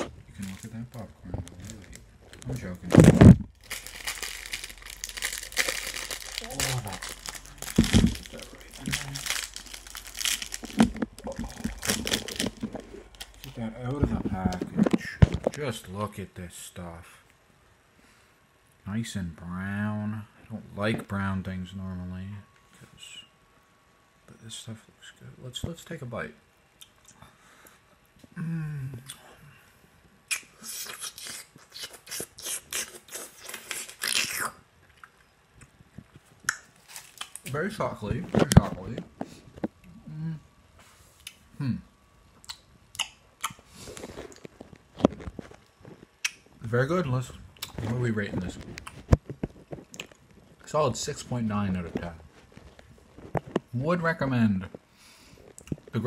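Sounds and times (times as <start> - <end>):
plastic wrapper crinkling: 0.0 - 15.6, 36.8 - 39.1
person chewing: 3.0 - 13.6, 30.3 - 35.8, 42.4 - 46.4, 48.8 - 50.6.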